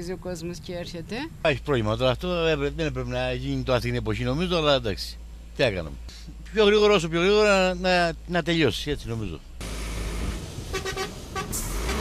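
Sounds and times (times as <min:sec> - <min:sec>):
heavy vehicle rumble: 0:00.0 - 0:12.0
road traffic: 0:00.0 - 0:12.0
short horn toots: 0:10.7 - 0:12.0.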